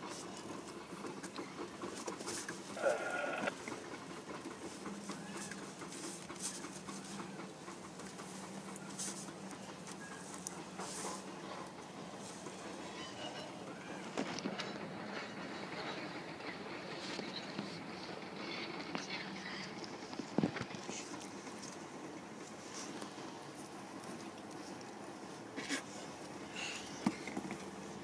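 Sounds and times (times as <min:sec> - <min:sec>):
distant freight train rumble: 0:00.0 - 0:28.0
train clanks: 0:00.0 - 0:28.0.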